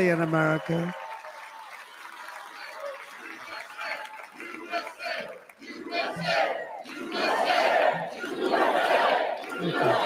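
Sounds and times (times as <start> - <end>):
arena crowd cheering: 0.0 - 10.0
scattered shouts: 3.4 - 10.0.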